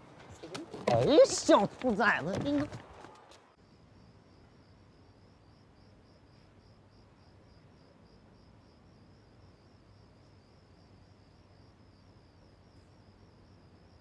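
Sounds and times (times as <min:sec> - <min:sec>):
crickets chirping: 0:03.6 - 0:14.0.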